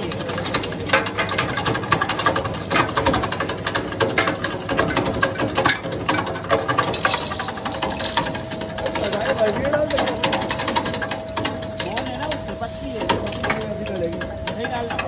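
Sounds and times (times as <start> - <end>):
cutting machine clattering: 0.0 - 15.0.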